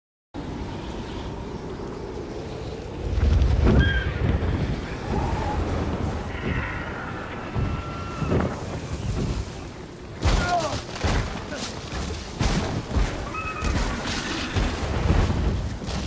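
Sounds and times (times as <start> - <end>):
low wind-like rumble: 0.4 - 16.0.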